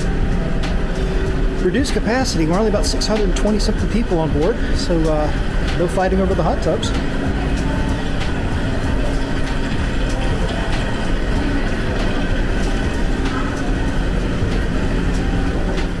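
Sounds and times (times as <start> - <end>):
hot tub jets churning water: 0.0 - 16.0.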